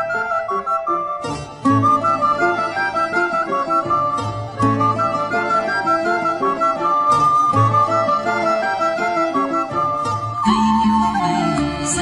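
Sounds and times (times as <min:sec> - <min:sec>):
plucked-string chords: 0:00.0 - 0:12.0
recorder melody: 0:00.0 - 0:12.0.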